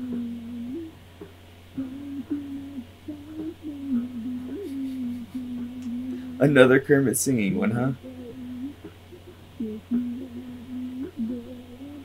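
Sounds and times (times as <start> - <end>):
person humming: 0.0 - 1.0, 1.8 - 12.0.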